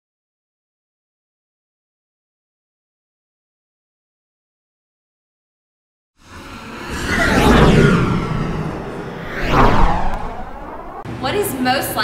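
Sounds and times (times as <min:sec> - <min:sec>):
whooshing pass-by effects: 0:06.2 - 0:11.1.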